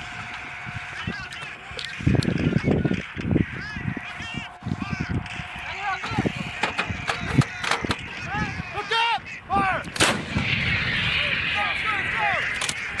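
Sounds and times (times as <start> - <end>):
rushing noise: 3.4 - 8.6, 10.0 - 13.0
sharp cracks: 9.9 - 13.0
howitzer firing: 10.0 - 10.6.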